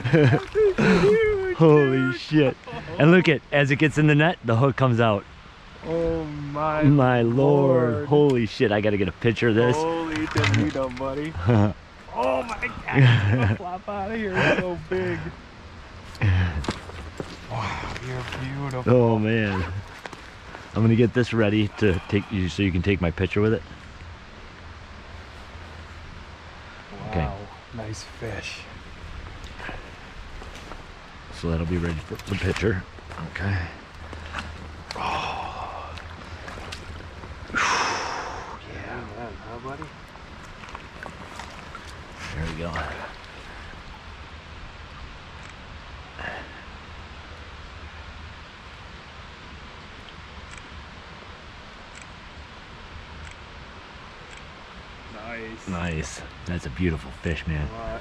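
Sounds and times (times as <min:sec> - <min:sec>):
creek water flowing over rocks: 0:14.7 - 0:22.8, 0:23.6 - 0:49.2.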